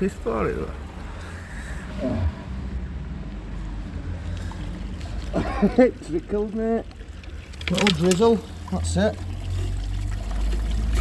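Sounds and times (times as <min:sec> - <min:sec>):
water trickling from a leak: 0:04.2 - 0:11.0.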